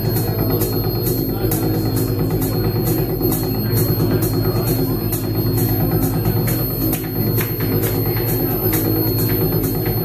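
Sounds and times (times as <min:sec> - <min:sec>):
heavy low electronic drone: 0:00.0 - 0:10.0.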